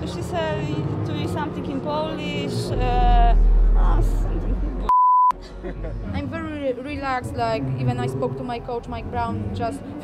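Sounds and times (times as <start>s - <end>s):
censor bleep: 4.9s - 5.4s.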